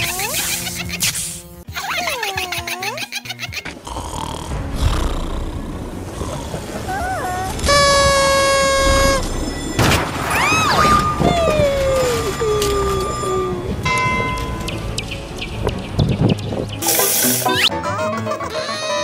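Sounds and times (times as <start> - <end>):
background music: 0.0 - 19.0
held horn-like tone: 7.5 - 9.8.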